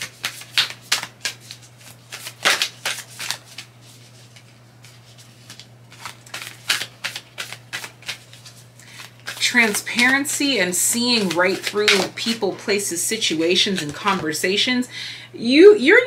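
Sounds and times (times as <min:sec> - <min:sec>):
cards being shuffled: 0:00.0 - 0:14.4.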